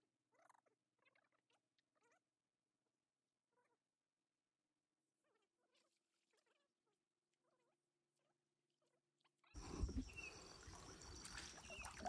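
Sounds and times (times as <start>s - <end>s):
water sloshing around wading person: 9.6s - 12.0s.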